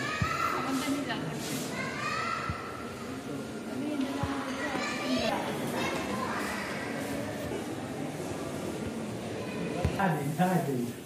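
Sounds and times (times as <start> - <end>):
children's voices: 0.0 - 10.0
indoor crowd chatter: 0.0 - 11.0.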